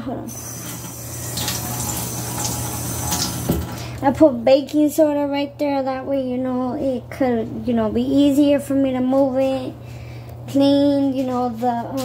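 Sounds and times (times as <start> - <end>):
faucet running into metal sink: 0.3 - 3.8.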